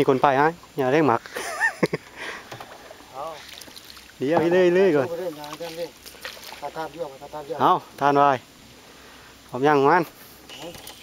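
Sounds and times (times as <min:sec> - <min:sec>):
water splashing around boat: 0:02.4 - 0:07.5.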